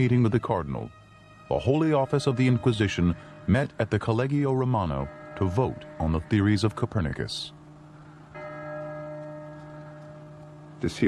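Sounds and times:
church bell ringing: 0:00.0 - 0:11.0.

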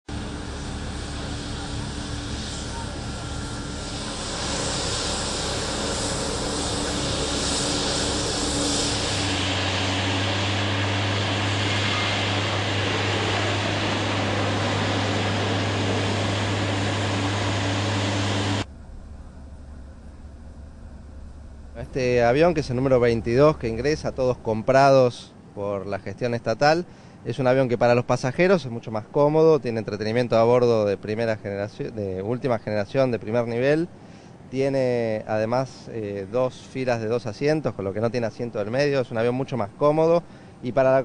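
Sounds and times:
strong low hum: 0:00.1 - 0:24.8
jet engines running: 0:00.1 - 0:27.2, 0:35.3 - 0:41.0.

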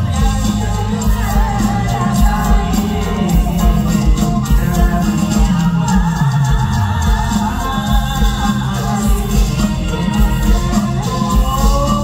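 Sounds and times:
people singing together: 0:00.0 - 0:12.0
steady low drum beat: 0:00.0 - 0:12.0.

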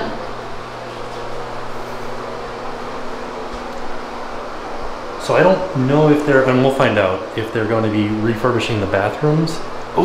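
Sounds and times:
ventilation hum and hiss: 0:00.0 - 0:10.0.

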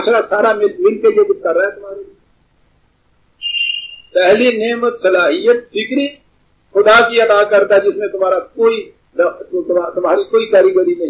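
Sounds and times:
high-pitched whistle-like tone: 0:03.4 - 0:04.4.

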